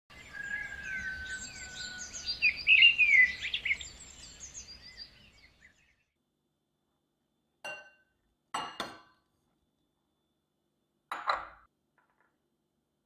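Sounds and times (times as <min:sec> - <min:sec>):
birds chirping and whistling: 0:00.1 - 0:06.1.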